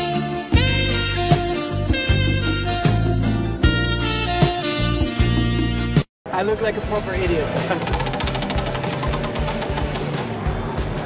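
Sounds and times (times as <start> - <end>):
background music: 0.0 - 11.0
prize wheel pointer clicking: 7.7 - 10.2.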